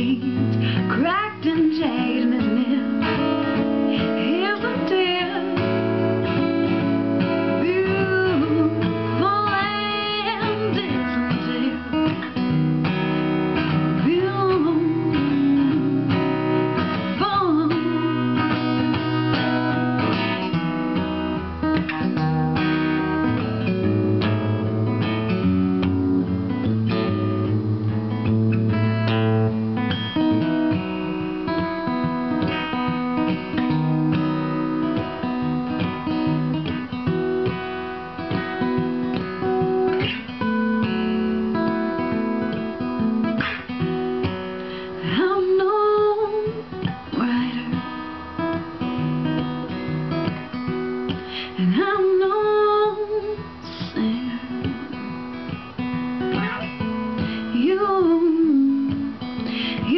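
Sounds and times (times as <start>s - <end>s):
woman singing wordlessly: 0.0s - 12.5s, 13.7s - 19.7s, 45.0s - 49.1s, 51.3s - 55.3s, 56.3s - 59.9s
acoustic guitar strumming and picking: 0.0s - 59.9s.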